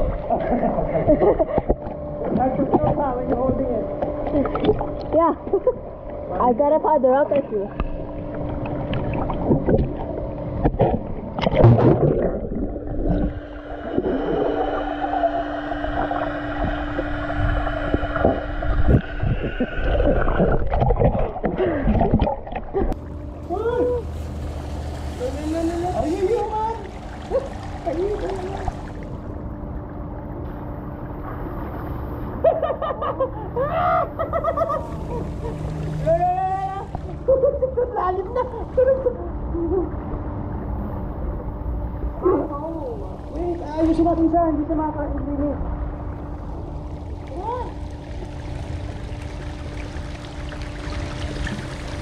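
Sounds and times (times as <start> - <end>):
steady low hum: 0.0 - 52.0
underwater bubbling: 7.2 - 32.5, 45.1 - 52.0.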